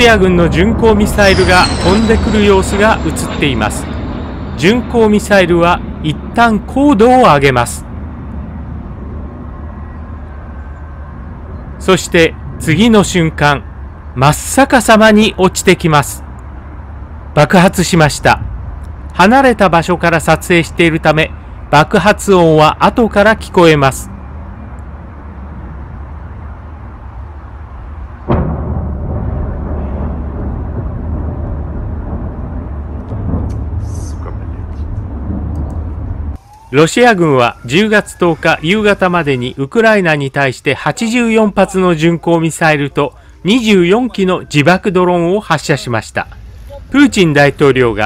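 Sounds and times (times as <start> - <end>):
distant city traffic rumble: 0.0 - 48.0
distant explosion boom: 0.1 - 7.2, 28.0 - 36.4.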